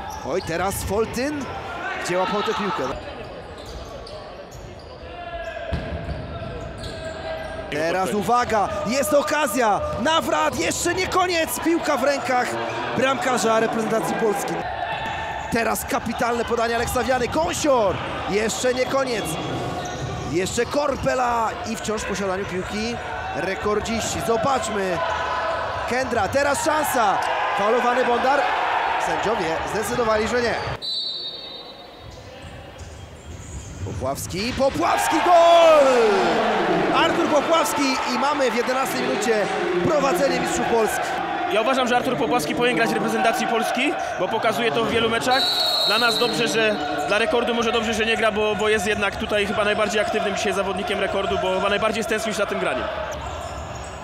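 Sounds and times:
players calling in a hall: 0:00.0 - 0:54.0
referee's whistle: 0:30.6 - 0:32.1, 0:45.2 - 0:47.0.

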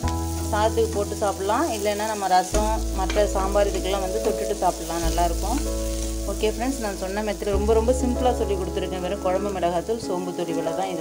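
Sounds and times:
background music: 0:00.0 - 0:11.0
potatoes sizzling in a frying pan: 0:00.0 - 0:11.0
metal spatula stirring: 0:00.1 - 0:07.5.

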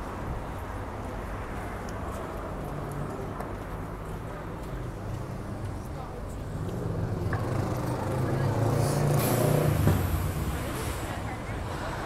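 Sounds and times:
vehicle engine passing by: 0:06.6 - 0:12.0.

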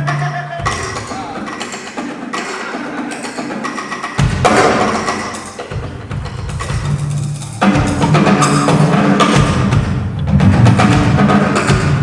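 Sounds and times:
jazz drum kit: 0:00.0 - 0:12.0
bass drum and cymbal crash: 0:04.1 - 0:12.0.

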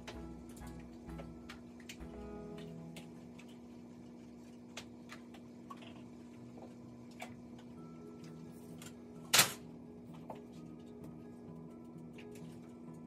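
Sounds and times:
steady low hum: 0:00.0 - 0:13.0.

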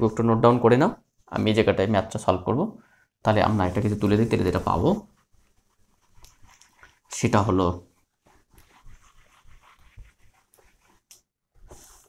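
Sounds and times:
duster wiping a whiteboard: 0:03.3 - 0:07.3, 0:07.9 - 0:12.0.

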